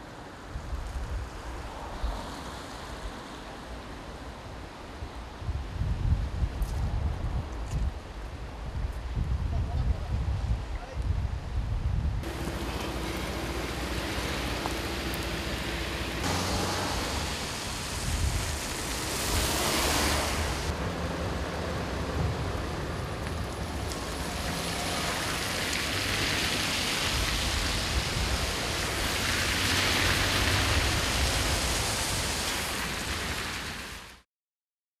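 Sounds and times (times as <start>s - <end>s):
traffic on wet roads: 0.0s - 10.4s, 12.2s - 34.2s
rain: 0.0s - 34.2s
idling engines hum: 12.2s - 26.7s.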